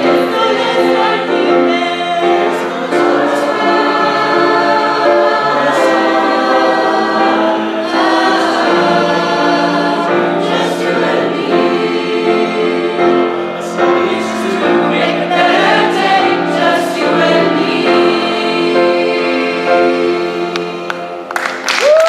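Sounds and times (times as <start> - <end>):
mixed choir singing: 0.0 - 21.6.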